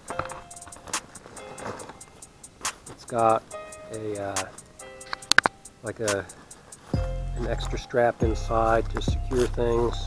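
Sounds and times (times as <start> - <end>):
backpack click: 0.0 - 3.2, 4.4 - 6.9
fabric rustling: 0.0 - 8.1
music: 0.0 - 10.0.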